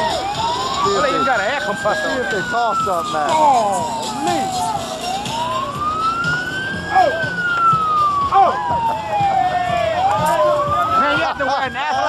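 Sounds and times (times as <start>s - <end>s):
siren wailing: 0.0s - 12.0s
people shouting: 3.1s - 5.2s, 6.9s - 7.4s, 8.3s - 12.0s.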